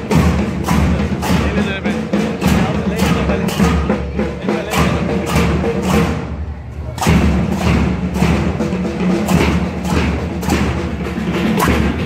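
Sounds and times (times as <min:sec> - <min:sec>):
marching band drums and cymbals: 0:00.0 - 0:12.0.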